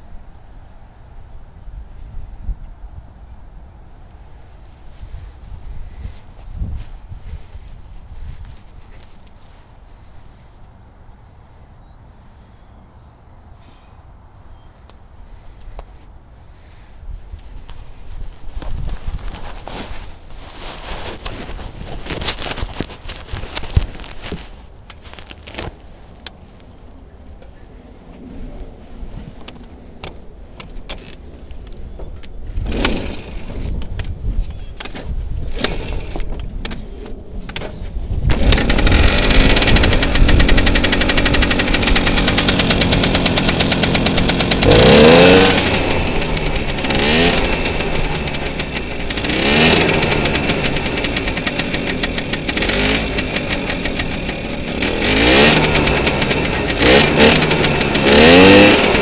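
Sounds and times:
moped being handled rattling: 18.5s - 25.9s, 30.7s - 59.0s
two-stroke engine running: 32.6s - 33.7s, 35.5s - 36.4s, 38.3s - 59.0s.

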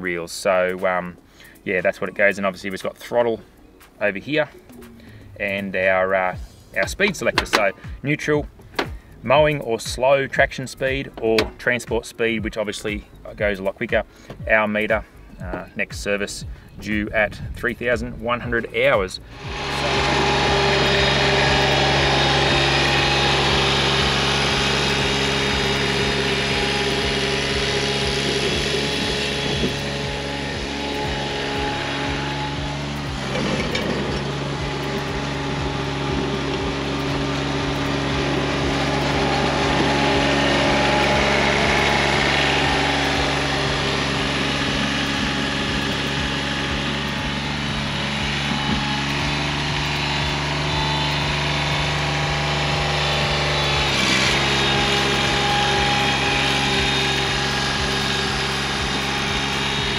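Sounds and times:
mower diesel engine running: 0.6s - 15.8s, 17.8s - 59.9s.

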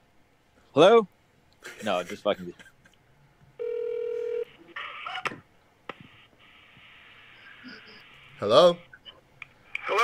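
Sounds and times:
faint phone line hiss: 3.6s - 4.5s
steady telephone tone: 3.6s - 4.5s.

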